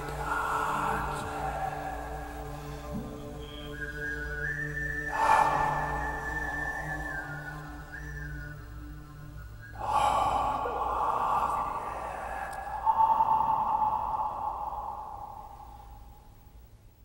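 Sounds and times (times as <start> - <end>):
breathy rushing sound: 0.0 - 3.4, 5.0 - 7.6, 9.7 - 16.6.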